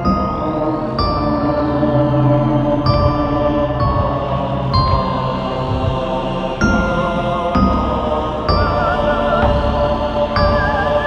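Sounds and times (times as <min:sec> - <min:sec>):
electro house music: 0:08.5 - 0:11.0.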